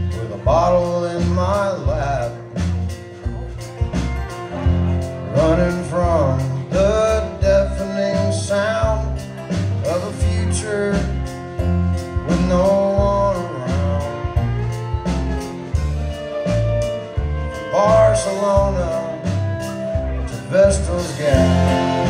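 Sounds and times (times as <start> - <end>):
fiddle sliding melody: 0.0 - 22.0
strummed acoustic guitar: 0.0 - 22.0.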